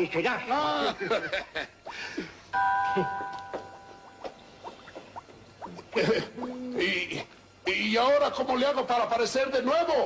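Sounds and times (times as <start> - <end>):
bell-like chime: 2.6 - 3.9.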